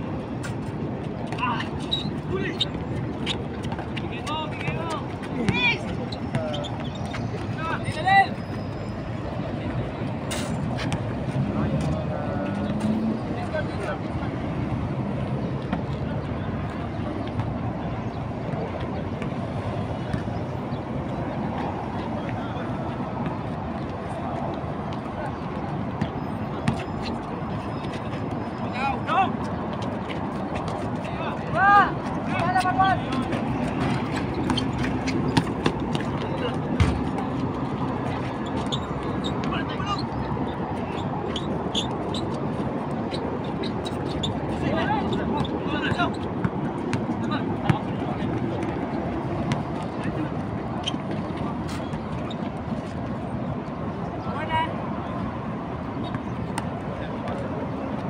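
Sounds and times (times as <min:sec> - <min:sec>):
road traffic noise: 0:00.0 - 0:58.0
players shouting: 0:03.6 - 0:08.9, 0:31.0 - 0:37.4.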